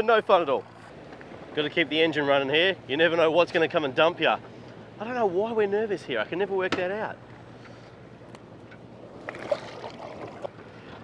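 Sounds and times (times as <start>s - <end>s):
boat engine idling: 0.0s - 11.0s
water splashing against boat: 0.0s - 11.0s.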